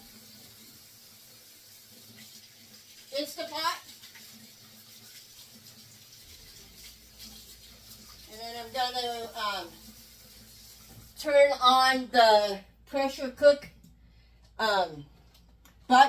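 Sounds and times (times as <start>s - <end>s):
water running in sink: 0.0s - 14.0s.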